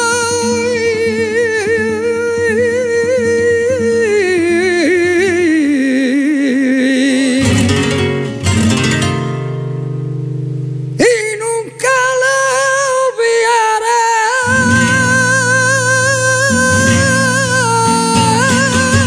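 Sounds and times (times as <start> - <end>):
man singing a long note: 0.0 - 7.8, 11.0 - 19.0
flamenco guitar strumming: 0.0 - 19.0.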